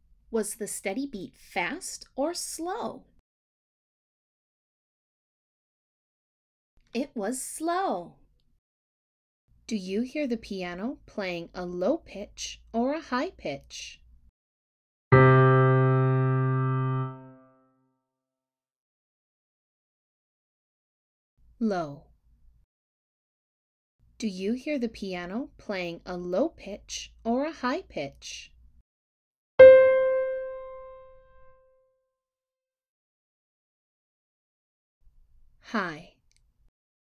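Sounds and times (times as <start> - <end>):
low piano note: 15.1 - 17.6, 29.6 - 31.6.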